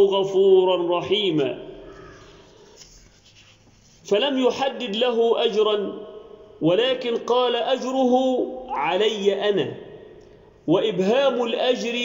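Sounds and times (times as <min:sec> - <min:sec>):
soft rustle: 0:02.2 - 0:04.1.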